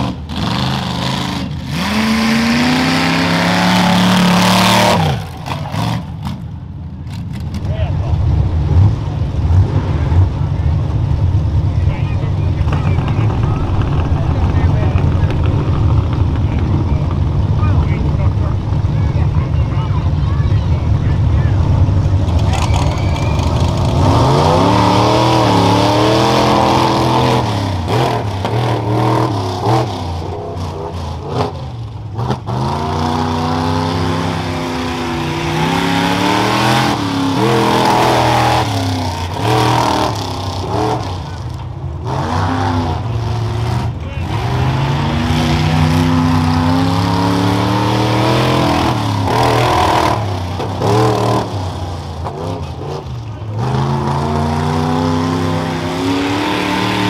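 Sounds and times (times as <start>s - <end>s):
truck engine revving: 0.0s - 57.0s.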